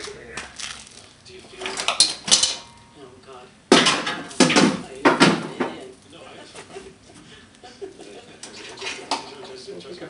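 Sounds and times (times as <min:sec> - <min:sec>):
metal tools clanking and rattling: 0:01.6 - 0:02.9.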